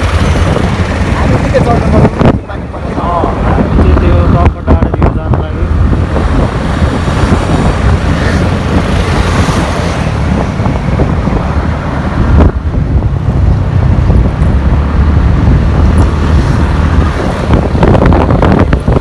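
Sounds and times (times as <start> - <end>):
vehicle engine and road rumble: 0.0 - 19.0
wind buffeting microphone: 0.0 - 19.0.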